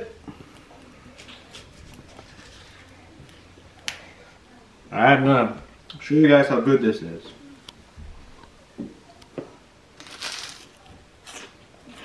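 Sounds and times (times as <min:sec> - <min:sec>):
faint crackles of crunchy food: 0:00.3 - 0:04.4, 0:08.4 - 0:12.0.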